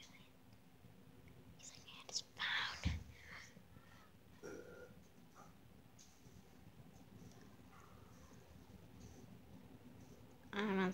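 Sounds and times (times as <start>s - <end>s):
person whispering: 1.6s - 3.5s.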